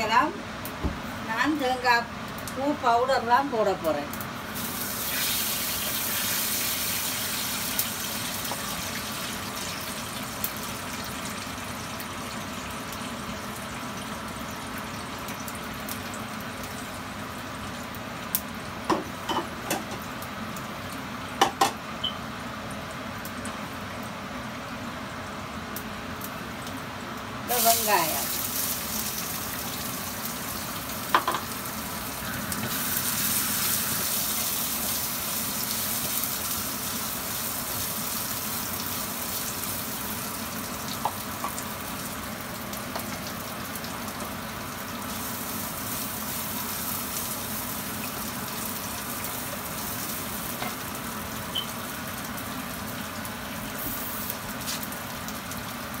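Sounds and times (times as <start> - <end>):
onions sizzling in hot oil: 0.0 - 56.0.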